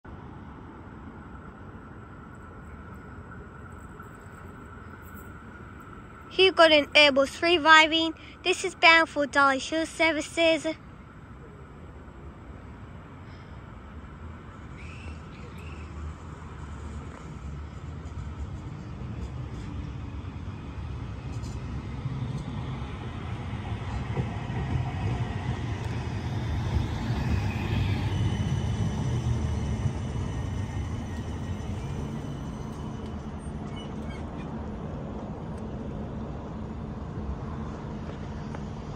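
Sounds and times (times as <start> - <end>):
tram rumbling on rails: 0.0 - 38.9.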